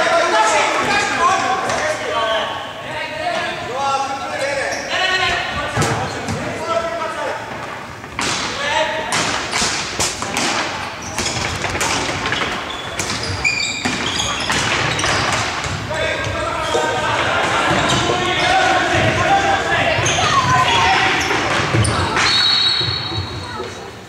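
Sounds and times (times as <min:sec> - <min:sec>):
voices calling out with echo: 0:00.0 - 0:24.0
hockey sticks and ball clacking: 0:07.5 - 0:23.5.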